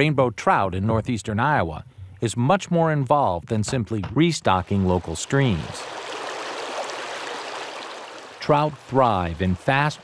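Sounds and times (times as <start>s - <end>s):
creek rushing over rocks: 4.6s - 10.0s.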